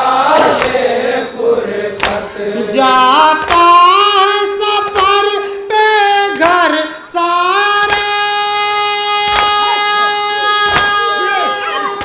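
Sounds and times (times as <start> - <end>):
hands slapping chests: 0.5 - 0.9, 2.0 - 2.3, 10.7 - 11.0.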